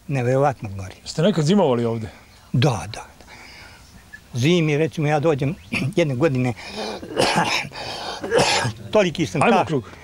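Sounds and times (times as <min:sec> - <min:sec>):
man coughing: 0:06.7 - 0:08.8.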